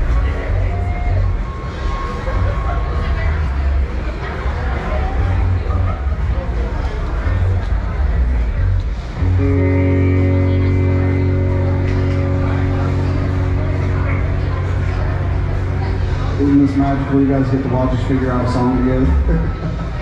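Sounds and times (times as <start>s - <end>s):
held amplified chord: 9.1s - 20.0s
band playing loosely: 9.2s - 18.3s.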